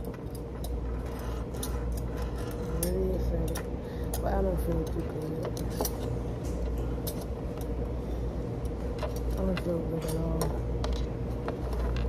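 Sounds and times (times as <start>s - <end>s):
faint steady hum: 0.0s - 12.0s
low background rumble: 0.0s - 12.0s.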